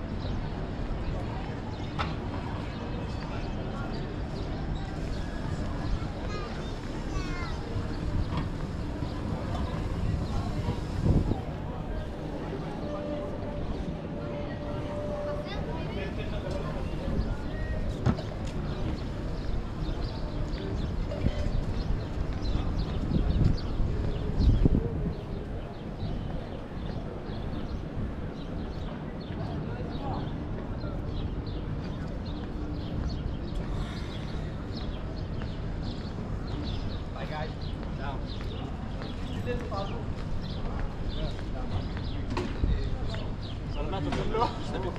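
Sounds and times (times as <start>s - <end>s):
indistinct chatter of passers-by: 0.0s - 44.9s.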